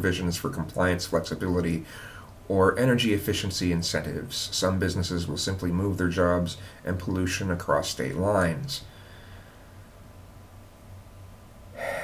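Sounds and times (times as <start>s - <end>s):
faint low hum: 0.0s - 12.0s
man's sharp intake of breath: 1.8s - 2.3s, 8.9s - 9.8s, 11.7s - 12.0s.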